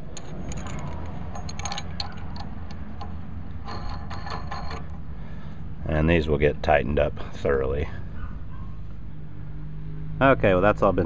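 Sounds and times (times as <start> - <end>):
metallic clinks of nut and washer: 0.1 - 5.0.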